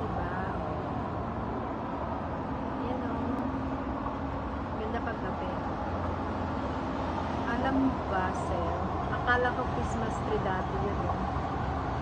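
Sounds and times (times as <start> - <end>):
city road traffic hum: 0.0 - 12.0
low engine-like tone: 0.0 - 12.0.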